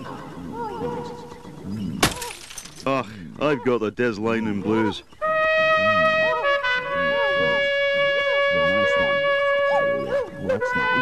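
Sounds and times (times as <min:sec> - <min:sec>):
trumpet long held note: 0:05.2 - 0:11.0.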